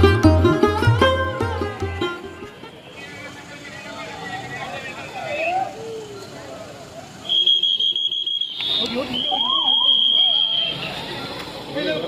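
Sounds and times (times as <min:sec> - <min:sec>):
people talking: 0:02.7 - 0:07.4, 0:08.6 - 0:12.0
police whistle blasts: 0:07.2 - 0:11.3.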